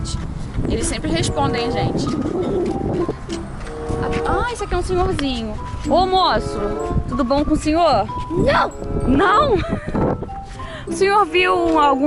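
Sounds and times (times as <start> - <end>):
wind buffeting microphone: 0.0 - 12.0
pigeon cooing: 1.9 - 4.5.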